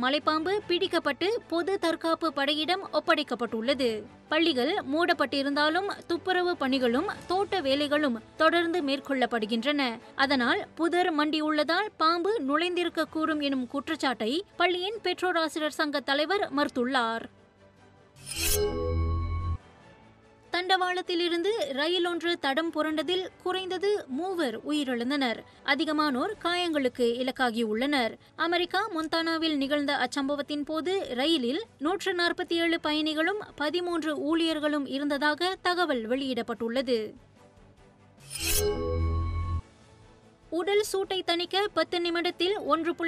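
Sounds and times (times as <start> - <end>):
synthesized chord: 18.2 - 19.8, 38.2 - 39.7.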